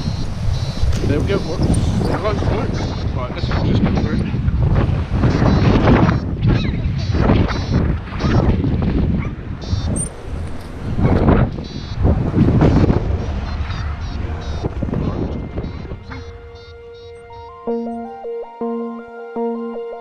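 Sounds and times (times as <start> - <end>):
wind buffeting microphone: 0.0 - 17.6.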